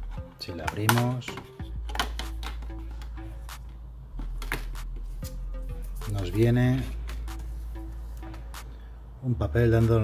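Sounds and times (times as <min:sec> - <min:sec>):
plastic case clicks and taps: 0:00.6 - 0:03.1.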